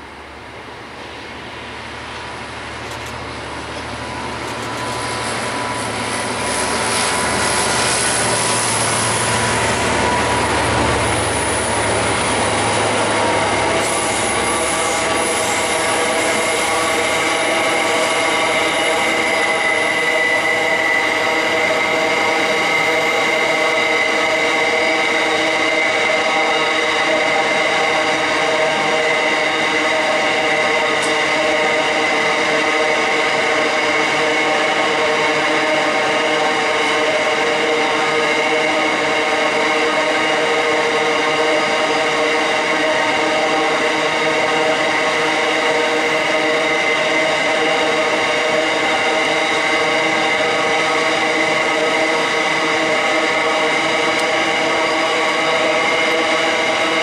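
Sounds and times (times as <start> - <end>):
diesel locomotive engines: 0.0 - 57.0
train wagons rolling: 2.0 - 32.7
wheels squealing on curve: 4.9 - 36.3.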